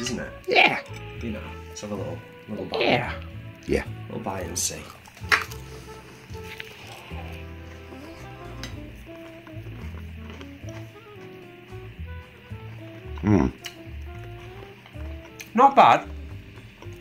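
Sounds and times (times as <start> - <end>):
soft background music: 0.0 - 17.0.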